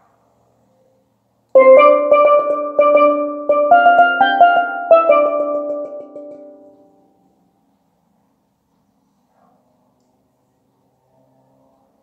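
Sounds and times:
steelpan melody: 1.6 - 7.0.

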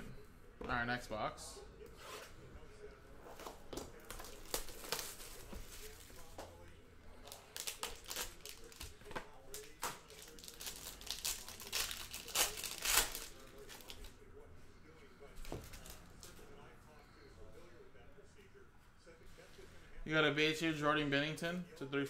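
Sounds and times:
plastic shrink-wrap tearing: 4.0 - 6.0, 7.3 - 14.0
foil card pack crinkling: 7.2 - 14.1.

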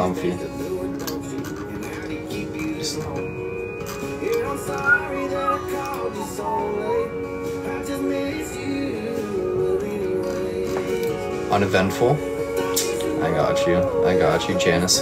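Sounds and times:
background music with sustained chords: 0.0 - 15.0
pitch-bending melody: 4.6 - 6.0.

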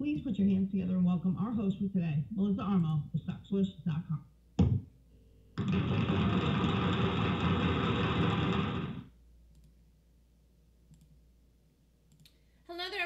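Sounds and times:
applause: 5.6 - 9.0.

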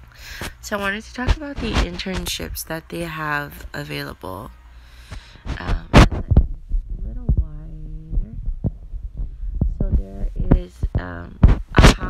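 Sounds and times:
steady low hum: 0.0 - 12.0
low thumps and clicks: 5.1 - 12.0.

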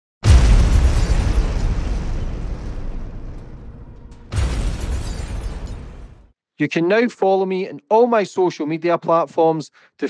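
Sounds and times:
deep cinematic boom: 0.2 - 6.3.

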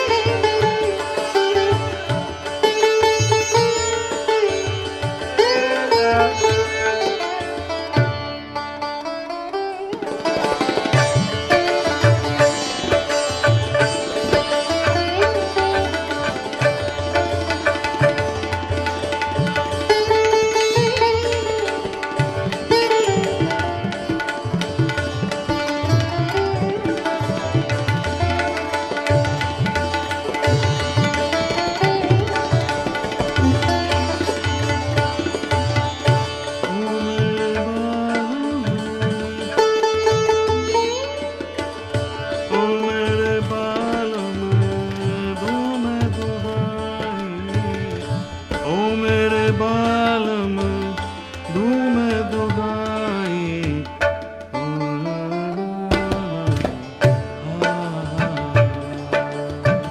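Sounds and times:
bowed string instrument: 0.0 - 59.9
sitar: 0.0 - 59.9
tabla drum strokes: 0.0 - 59.9.

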